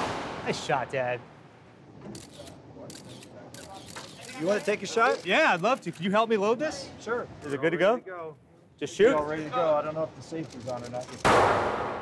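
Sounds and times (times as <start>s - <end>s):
camera shutter clicks: 2.2s - 6.0s.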